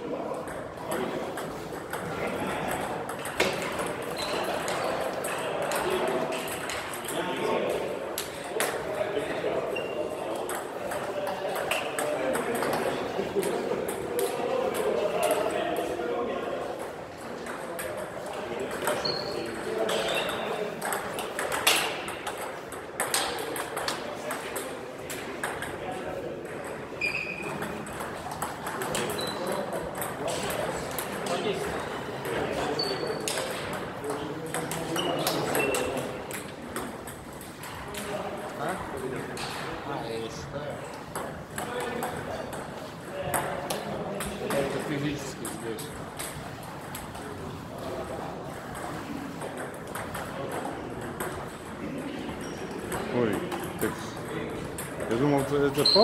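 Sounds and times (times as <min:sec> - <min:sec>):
people talking: 0:00.0 - 0:46.1, 0:47.1 - 0:56.0
ping pong ball clicking off bats: 0:00.3 - 0:08.9, 0:09.8 - 0:15.9, 0:16.8 - 0:38.6, 0:41.1 - 0:47.4, 0:48.5 - 0:56.0
ball bouncing on table: 0:00.4 - 0:07.2, 0:09.8 - 0:14.0, 0:18.7 - 0:25.8, 0:26.4 - 0:38.1, 0:48.7 - 0:51.6
short high squeaks: 0:27.0 - 0:27.5.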